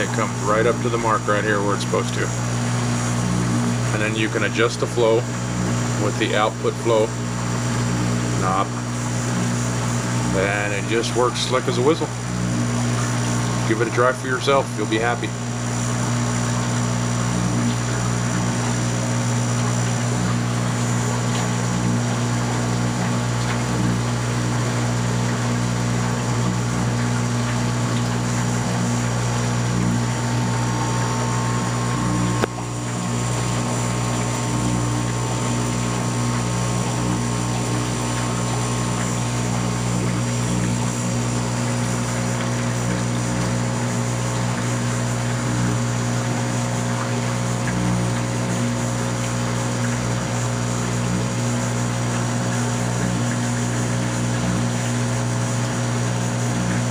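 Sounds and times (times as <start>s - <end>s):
aquarium pump humming: 0.0s - 56.9s.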